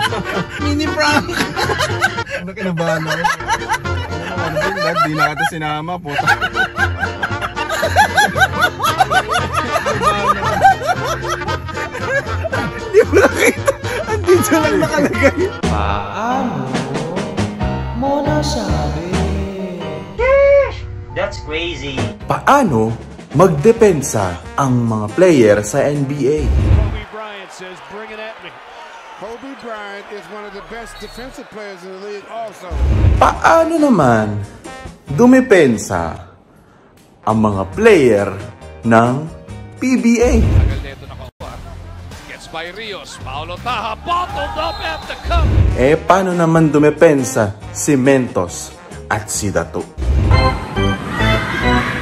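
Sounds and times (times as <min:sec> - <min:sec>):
background music: 0:00.0 - 0:52.0
person laughing: 0:06.1 - 0:15.6.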